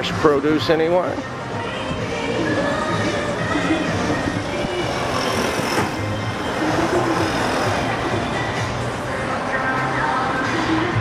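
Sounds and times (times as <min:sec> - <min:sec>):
music from outdoor loudspeaker: 0:00.0 - 0:11.0
street traffic: 0:00.0 - 0:11.0.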